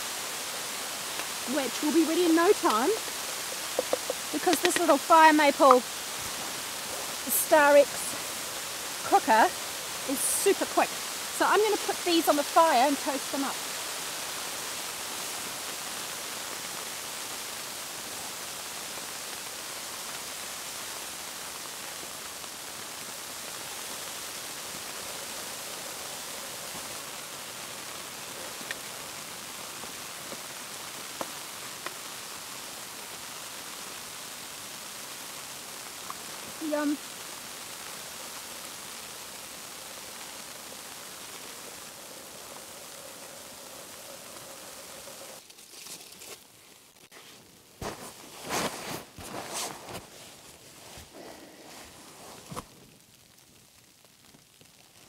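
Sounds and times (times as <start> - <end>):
gas stove hissing: 0.0 - 52.6
knocks and crackles: 2.5 - 7.1, 45.0 - 50.3.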